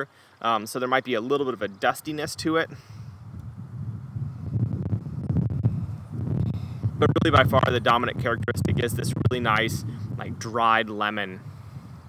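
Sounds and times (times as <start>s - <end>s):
wind buffeting microphone: 2.2s - 12.0s.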